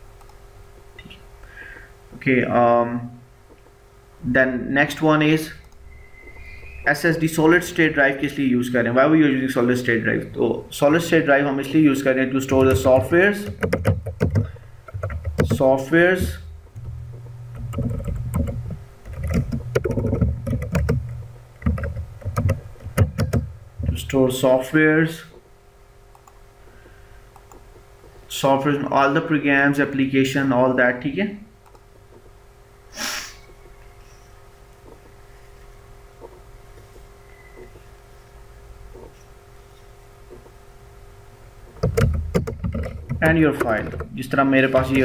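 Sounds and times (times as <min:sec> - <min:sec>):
keyboard typing clicks: 0:12.5 - 0:23.5, 0:26.1 - 0:26.4, 0:27.3 - 0:27.6, 0:31.6 - 0:31.9.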